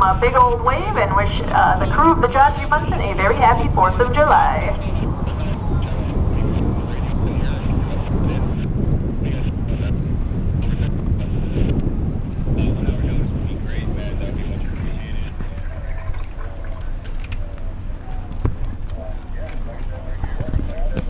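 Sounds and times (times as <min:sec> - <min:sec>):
people's voices: 0:00.0 - 0:11.8, 0:12.5 - 0:21.0
ship engine deep rumble: 0:00.0 - 0:21.0
wind on microphone: 0:00.0 - 0:21.0.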